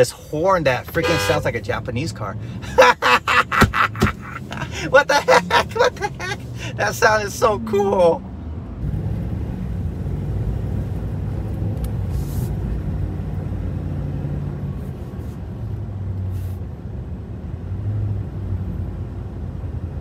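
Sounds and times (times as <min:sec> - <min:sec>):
engine and road drone: 0:00.0 - 0:20.0.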